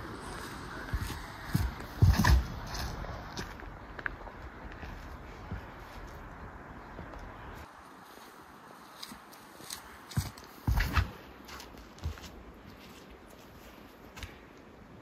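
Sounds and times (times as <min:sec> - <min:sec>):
soft footsteps: 0:00.1 - 0:14.6
heavy foot thuds: 0:00.9 - 0:02.6, 0:10.2 - 0:11.2.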